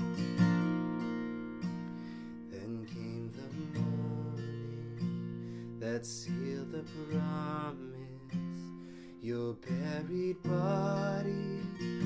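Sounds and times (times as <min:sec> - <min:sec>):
acoustic guitar strummed slowly: 0:00.0 - 0:12.0
man singing: 0:02.5 - 0:12.0.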